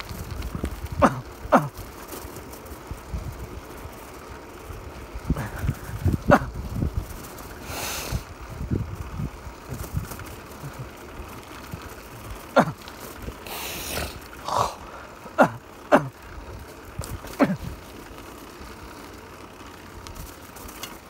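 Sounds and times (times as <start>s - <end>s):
tyre rumble on asphalt: 0.0s - 21.0s
wind: 0.0s - 21.0s.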